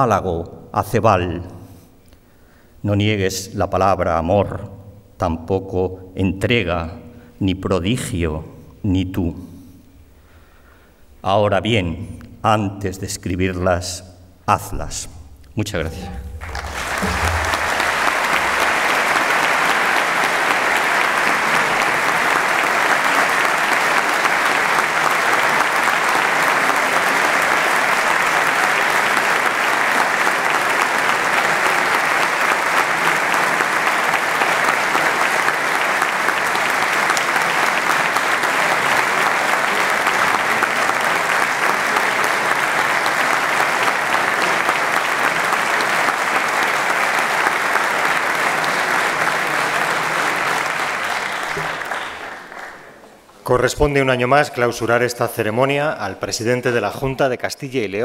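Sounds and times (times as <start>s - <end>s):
audience applauding: 15.9s - 53.3s.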